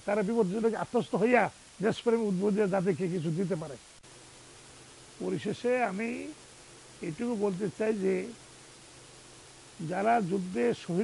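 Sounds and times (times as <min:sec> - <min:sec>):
man talking: 0:00.0 - 0:03.8, 0:05.2 - 0:06.4, 0:07.0 - 0:08.4, 0:09.8 - 0:11.0.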